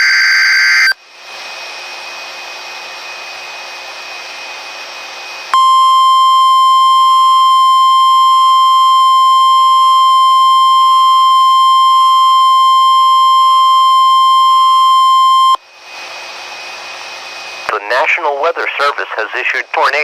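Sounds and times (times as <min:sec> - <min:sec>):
steady alarm tone: 0:05.6 - 0:15.6
radio hiss: 0:17.7 - 0:20.0.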